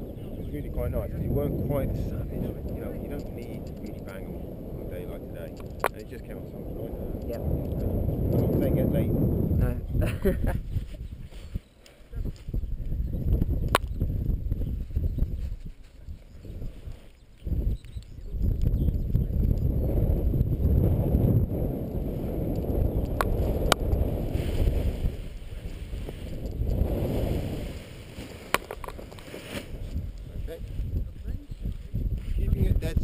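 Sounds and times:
wind buffeting microphone: 0.0s - 33.0s
sharp clicks: 5.5s - 6.2s.

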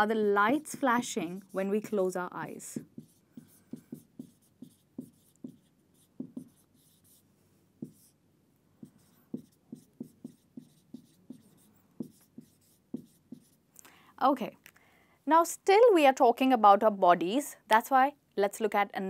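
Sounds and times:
marker squeaking on whiteboard: 2.8s - 7.2s, 7.8s - 8.2s, 8.8s - 13.6s.

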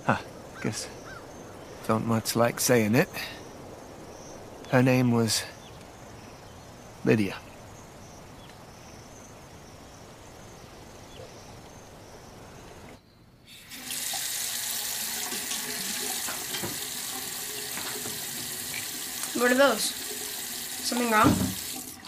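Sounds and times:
faint outdoor background: 0.0s - 22.0s
tap running into sink: 15.0s - 19.4s, 21.0s - 22.0s.

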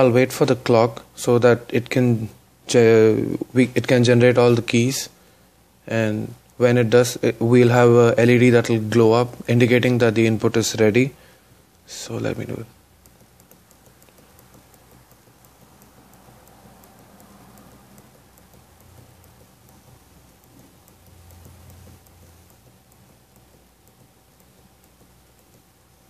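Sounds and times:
low steady hum: 0.0s - 26.0s
rapid high ticks: 11.7s - 26.0s.

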